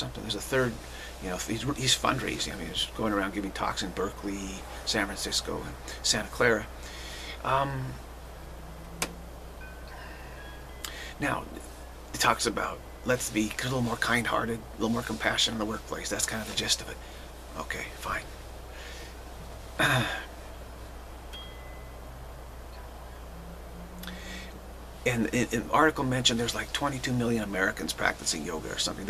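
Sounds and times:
steady low hum: 0:00.0 - 0:29.0
faint thin high tones: 0:08.6 - 0:11.1
faint high chime: 0:09.6 - 0:11.5, 0:21.3 - 0:22.2.

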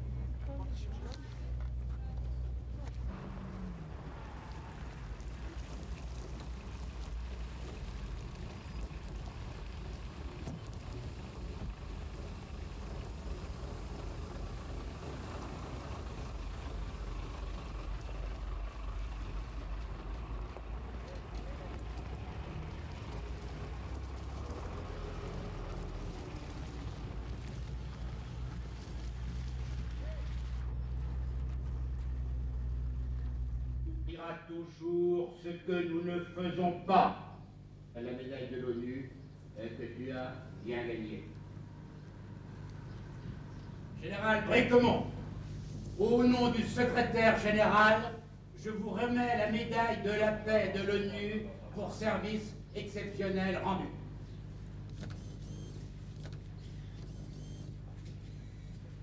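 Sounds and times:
armoured vehicle engines rumbling: 0:00.0 - 0:59.0.

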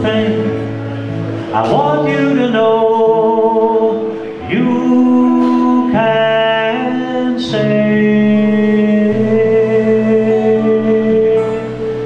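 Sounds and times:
acoustic guitar: 0:00.0 - 0:12.0
male voices singing in harmony: 0:01.5 - 0:12.0.

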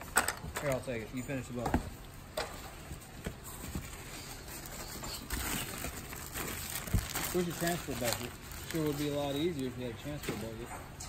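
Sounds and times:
packing paper rustling: 0:03.5 - 0:10.6.

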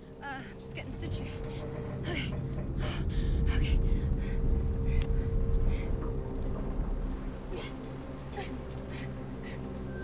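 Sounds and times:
low rumble: 0:00.5 - 0:10.0.

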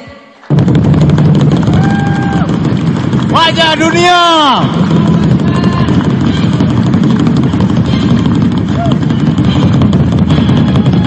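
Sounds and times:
crowd clapping and cheering: 0:00.5 - 0:11.0
large drum struck: 0:00.5 - 0:11.0.

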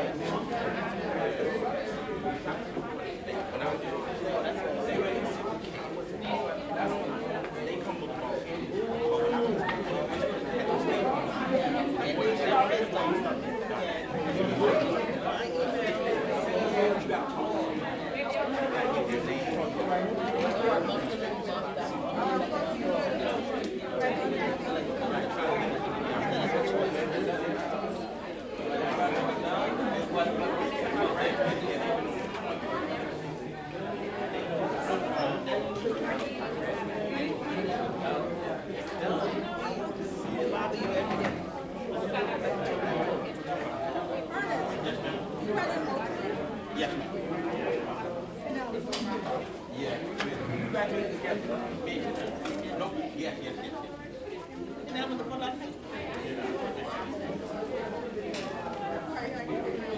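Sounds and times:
babble of overlapping conversations: 0:00.0 - 0:59.9.

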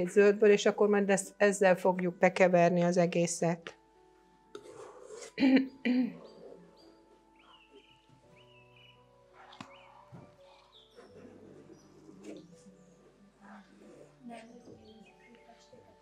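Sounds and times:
calm music with soft tones: 0:00.0 - 0:16.0
birdsong chirps: 0:05.6 - 0:13.3, 0:14.4 - 0:15.9.

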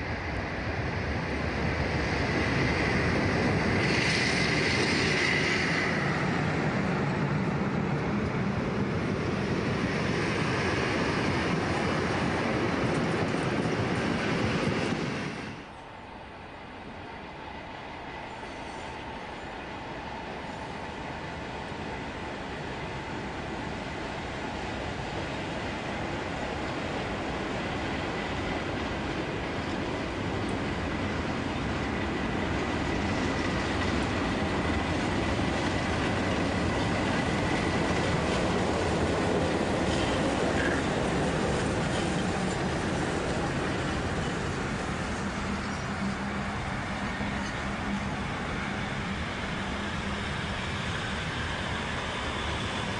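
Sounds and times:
train passing on track: 0:00.0 - 0:52.9
train wheel noise: 0:00.0 - 0:52.9.

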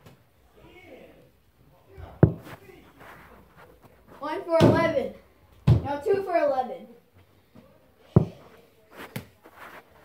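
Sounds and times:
soccer ball thudding on floor: 0:02.2 - 0:02.6, 0:05.6 - 0:05.9, 0:08.2 - 0:08.4.

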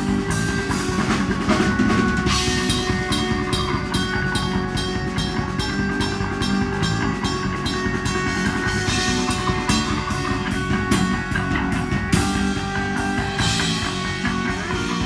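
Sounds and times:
bass and guitar sustained notes: 0:00.0 - 0:15.0
drum kit pounding fast beat: 0:00.0 - 0:15.0.

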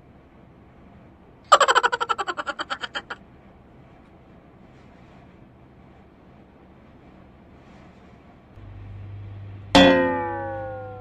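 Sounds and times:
low hum: 0:08.6 - 0:11.0
metallic ring sliding down in pitch: 0:09.8 - 0:11.0.

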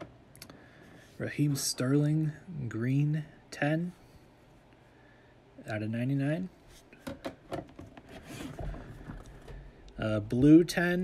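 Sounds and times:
plastic cases scraping together: 0:07.7 - 0:09.7.

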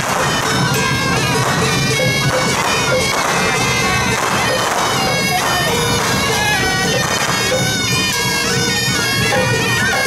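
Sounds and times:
double-reed horns wailing: 0:00.0 - 0:10.0
percussion crashes: 0:00.0 - 0:10.0.

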